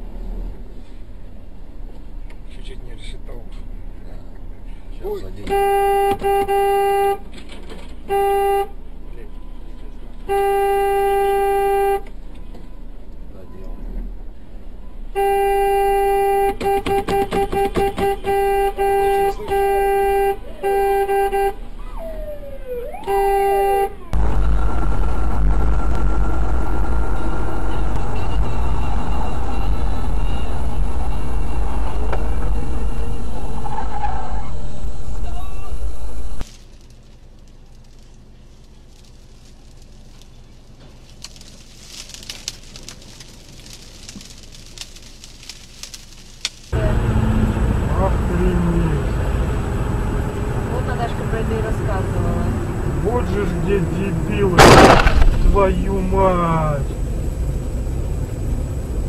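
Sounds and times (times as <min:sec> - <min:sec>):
car horn honking: 0:05.2 - 0:07.3, 0:08.0 - 0:12.1, 0:15.1 - 0:21.7, 0:23.0 - 0:24.2, 0:27.0 - 0:33.5, 0:53.0 - 0:56.9
loud steady rumbling: 0:24.1 - 0:36.5, 0:46.6 - 0:59.0.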